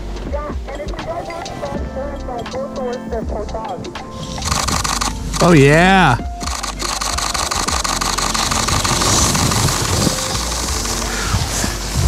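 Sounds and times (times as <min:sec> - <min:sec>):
camera shutter burst: 0:04.2 - 0:05.8, 0:06.4 - 0:11.9.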